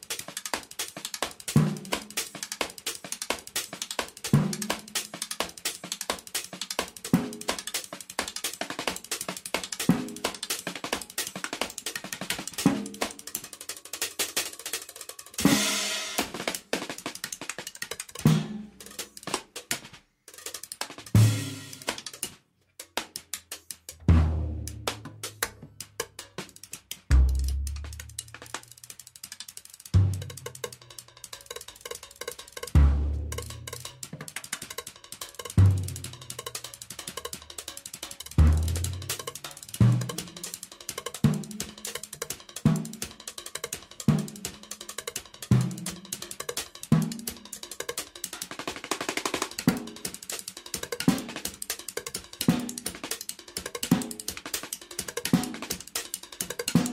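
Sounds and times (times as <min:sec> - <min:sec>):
small clicks and cymbal taps: 0:00.0 - 0:15.4, 0:16.2 - 0:32.8, 0:33.4 - 0:56.9.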